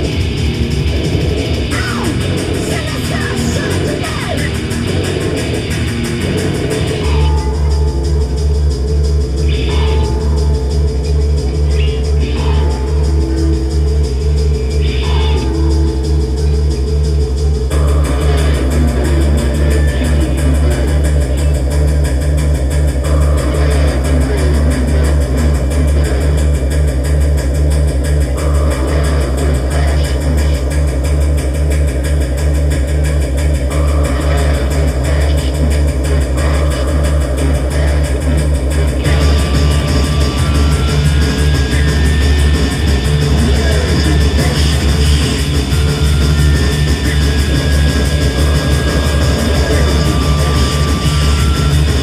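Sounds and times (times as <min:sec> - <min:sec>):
electric guitar: 0:00.0 - 0:52.0
low synth bass drone: 0:00.0 - 0:52.0.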